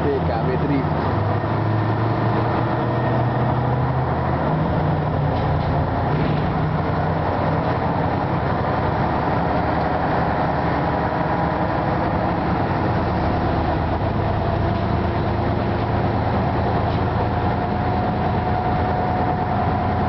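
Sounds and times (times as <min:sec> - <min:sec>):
bus diesel engine running: 0:00.0 - 0:20.0
road noise: 0:00.0 - 0:20.0.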